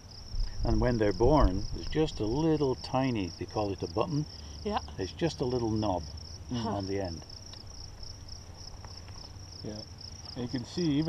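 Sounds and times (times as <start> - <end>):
insects chirping trill: 0.0 - 11.0.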